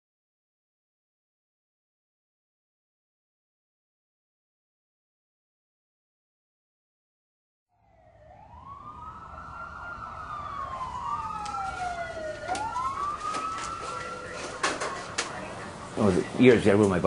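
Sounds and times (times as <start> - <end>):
emergency vehicle siren wailing: 7.7 - 16.4
low traffic rumble: 7.8 - 17.0.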